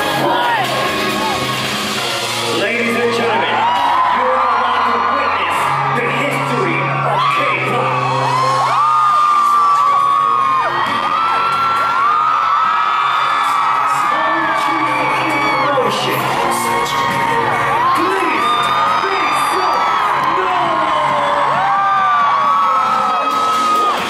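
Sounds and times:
crowd screaming and whooping: 0.0 - 24.0
hip-hop music over sound system: 0.0 - 24.0.

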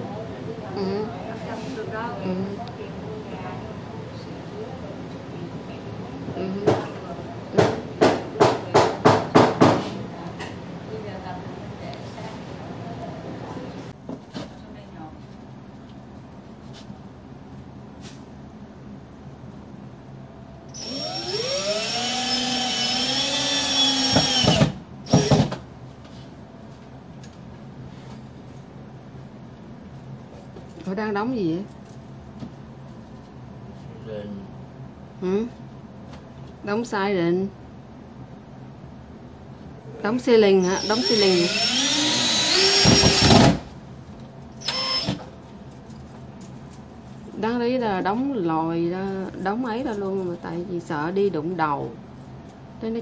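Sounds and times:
cordless drill whine: 20.7 - 25.5, 40.6 - 43.6, 44.6 - 45.3.

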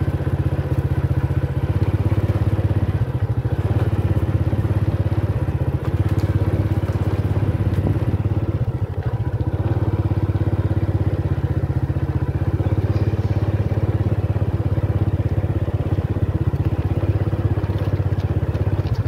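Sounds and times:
small motorcycle engine running: 0.0 - 19.0.

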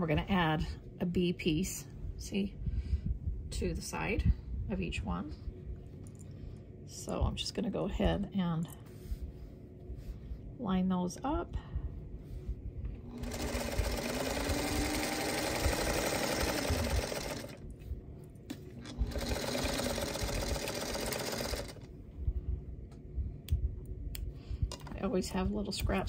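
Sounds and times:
sewing machine stitching: 13.1 - 17.6, 18.8 - 21.9.

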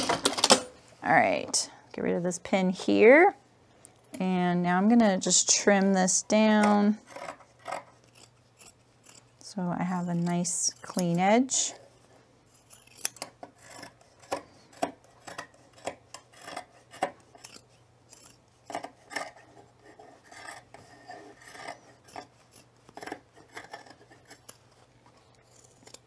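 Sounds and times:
scissors snipping cloth: 9.9 - 11.3, 12.6 - 14.4.

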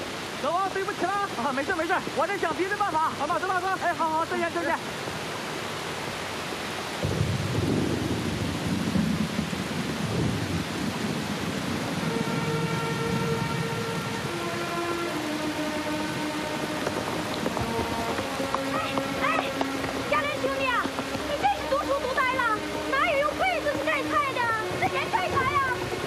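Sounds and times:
heavy rain pouring: 0.0 - 26.0
thunder rumbling: 7.0 - 26.0
soft sustained music notes: 11.8 - 26.0.

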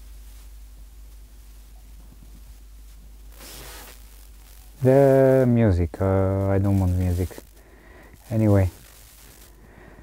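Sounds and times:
radio static noise: 1.6 - 10.0
burst of radio hiss: 3.2 - 10.0
loud steady tone: 3.3 - 10.0.

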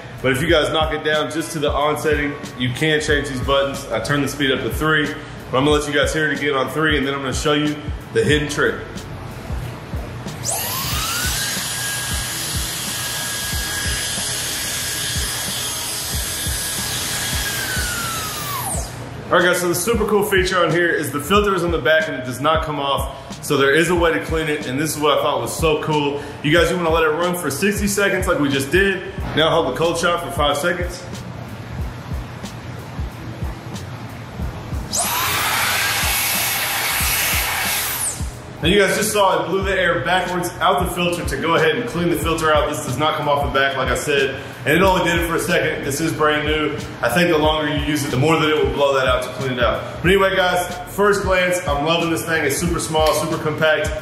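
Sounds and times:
background music with steady beat: 0.0 - 54.0
hair dryer running: 10.3 - 19.0, 34.8 - 38.4.

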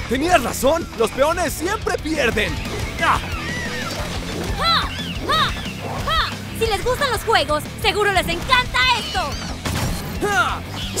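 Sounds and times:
action music: 0.0 - 11.0.

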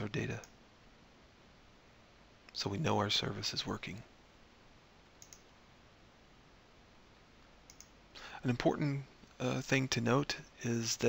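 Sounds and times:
faint computer mouse clicks: 5.2 - 5.5, 7.7 - 8.0.

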